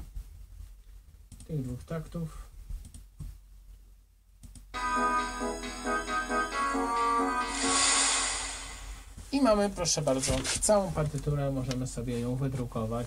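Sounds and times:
cymbal wash: 4.8 - 9.2
synth chords: 4.8 - 9.2.

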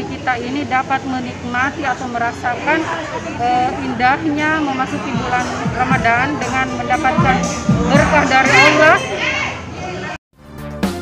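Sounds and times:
woman speaking: 0.0 - 9.1
quiet background music: 0.0 - 9.2.

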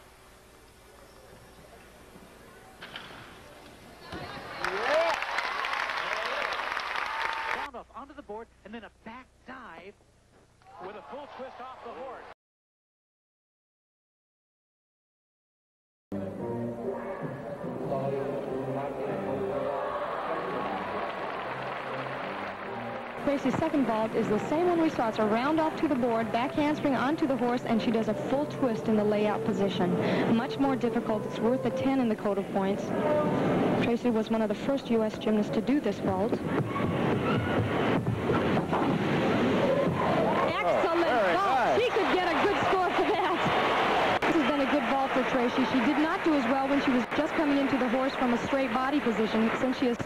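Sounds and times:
steady background hiss: 0.0 - 10.7
steady background noise: 0.0 - 12.2, 16.2 - 50.0.

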